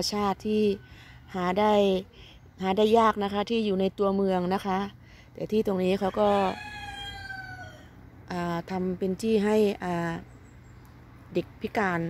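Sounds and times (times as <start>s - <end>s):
rooster crowing: 6.0s - 8.0s.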